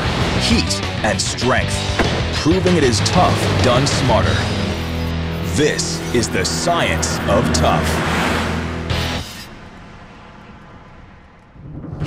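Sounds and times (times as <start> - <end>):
low rumble: 10.1 - 12.0.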